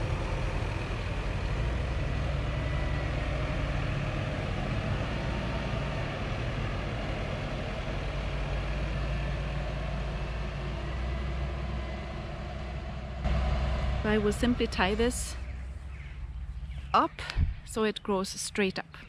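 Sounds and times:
diesel engine droning: 0:00.0 - 0:19.0.

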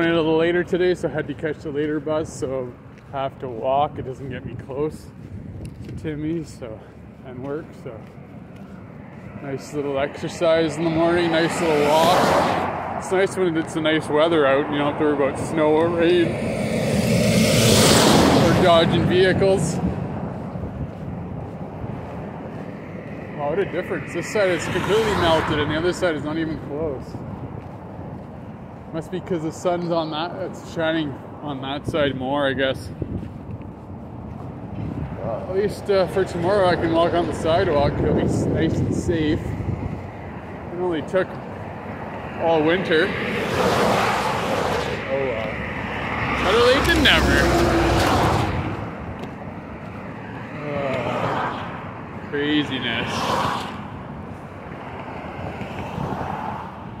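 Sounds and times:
distant road traffic: 0:00.0 - 0:57.0
steady rushing noise: 0:00.0 - 0:57.0
wind buffeting microphone: 0:00.0 - 0:57.0.

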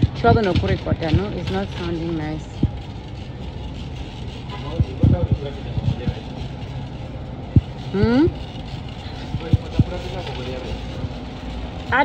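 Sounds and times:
shopping cart rattling on concrete: 0:00.0 - 0:12.0.

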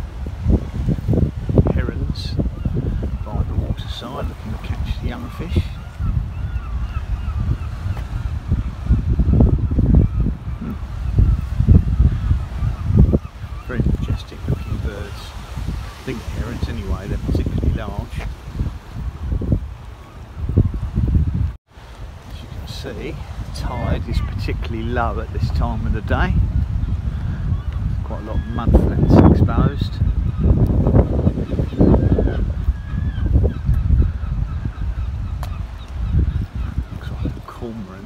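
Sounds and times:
waterbirds calling: 0:00.0 - 0:38.0
wind buffeting microphone: 0:00.0 - 0:38.0.

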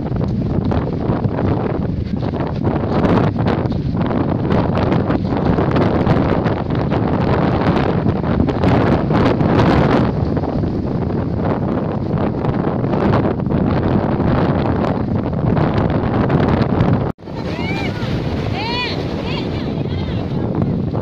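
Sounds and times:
wind buffeting microphone: 0:00.0 - 0:21.0
surf breaking on pebble beach: 0:17.2 - 0:20.9.

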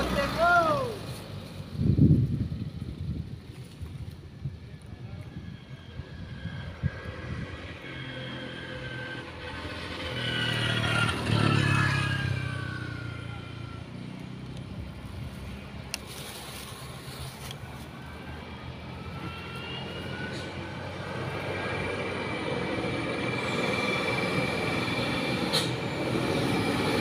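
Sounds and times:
motorbike engine passing: 0:05.8 - 0:27.0.

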